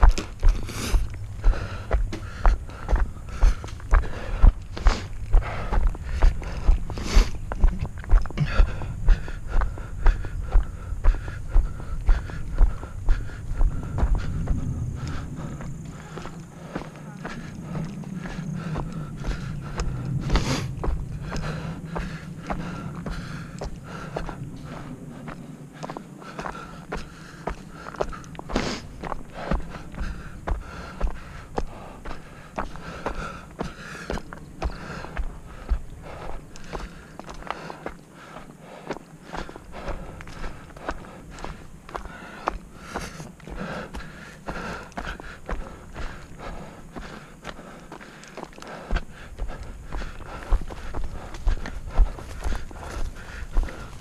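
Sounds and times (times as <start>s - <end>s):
footsteps on stony dirt trail: 0.0s - 54.0s.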